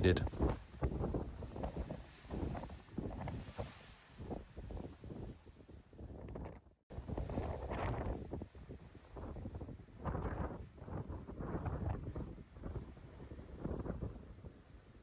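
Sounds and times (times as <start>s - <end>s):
wind gusting across microphone: 0.0s - 15.0s.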